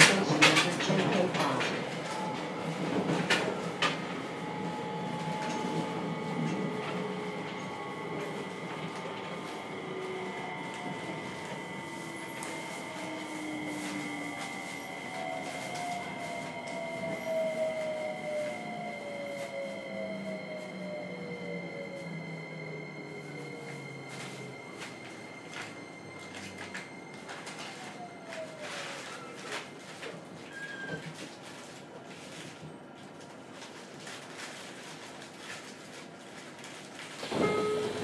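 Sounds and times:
train wheel and running noise: 0.0s - 38.0s.

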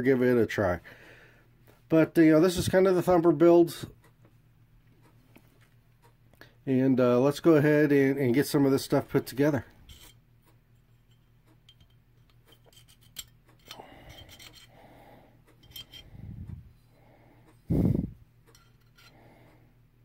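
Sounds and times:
small metal clicks and clinks: 11.0s - 14.8s, 15.5s - 16.2s, 18.4s - 19.3s.

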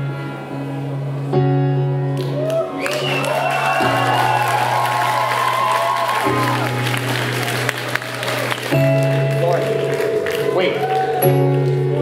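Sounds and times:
sustained low keyboard chord: 0.0s - 2.2s, 6.3s - 12.0s
audience cheering: 2.2s - 11.8s
wavering whoop from crowd: 2.3s - 7.6s, 10.7s - 11.4s.

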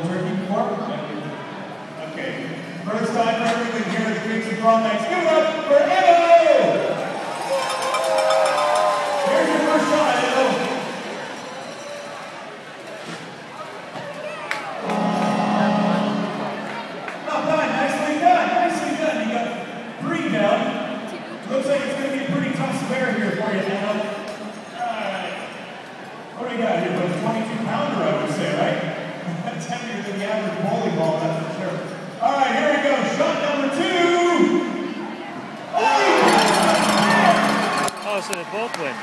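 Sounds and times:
indistinct talking: 0.0s - 23.4s, 32.4s - 39.0s
arena crowd chatter: 0.0s - 39.0s
music over loudspeakers: 14.8s - 16.7s.

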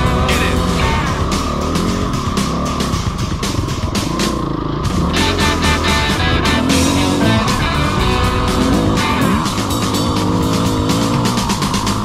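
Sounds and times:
dirt bike engine revving: 0.0s - 12.0s
rock music with guitar: 0.0s - 12.0s.

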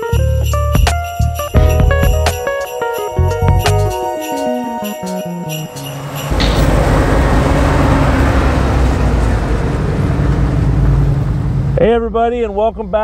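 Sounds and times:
engine running on the move: 5.8s - 13.0s.

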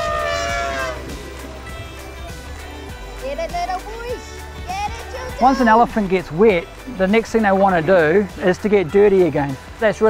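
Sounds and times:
elephant trumpeting: 0.0s - 2.6s
background music: 0.0s - 10.0s.

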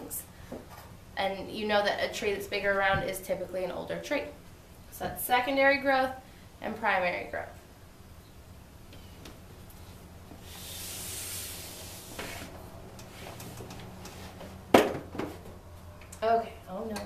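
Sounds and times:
boards sliding against whiteboard: 10.4s - 14.5s.

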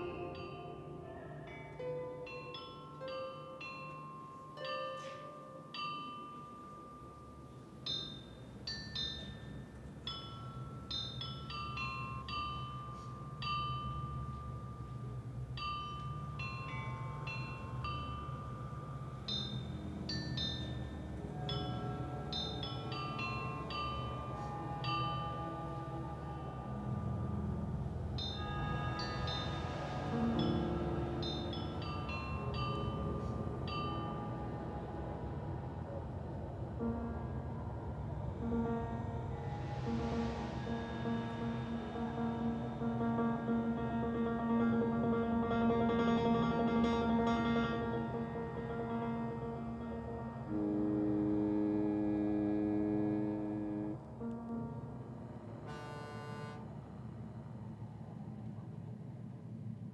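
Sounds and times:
ringing bell-like notes: 0.0s - 57.0s
low drone: 0.0s - 59.9s.

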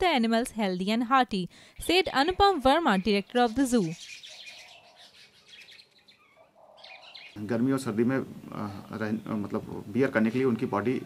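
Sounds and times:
small birds chirping: 1.6s - 11.0s.

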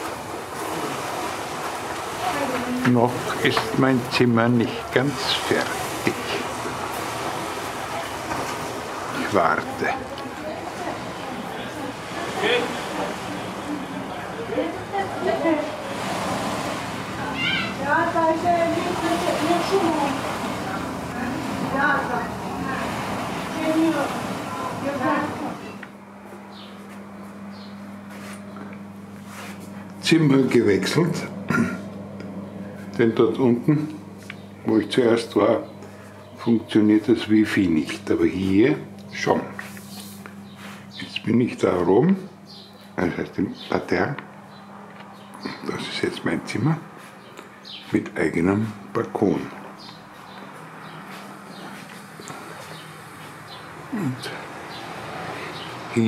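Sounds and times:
sea surf washing onto beach: 0.0s - 25.8s
low hum: 0.0s - 47.6s
outdoor noise: 0.0s - 56.0s
indistinct voices: 53.8s - 56.0s.

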